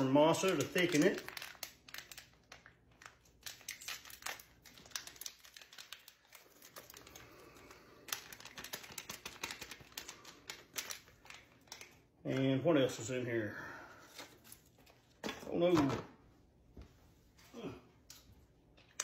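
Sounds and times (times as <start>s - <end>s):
packet crinkling and tearing: 0.0s - 12.0s.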